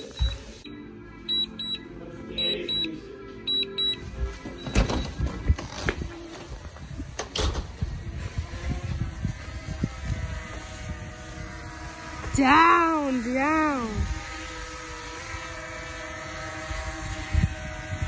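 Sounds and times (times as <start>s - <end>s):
remote controller beeping: 0.0s - 5.2s
faint drone propeller hum: 6.1s - 18.0s.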